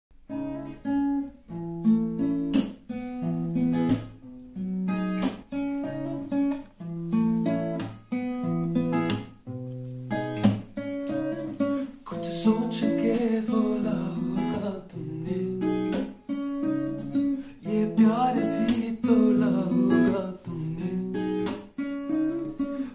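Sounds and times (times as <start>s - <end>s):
acoustic guitar picked melody: 0.2s - 22.9s.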